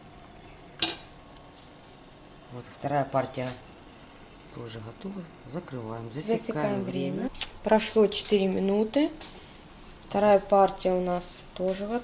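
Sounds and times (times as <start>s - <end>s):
low kitchen background: 0.0s - 12.0s.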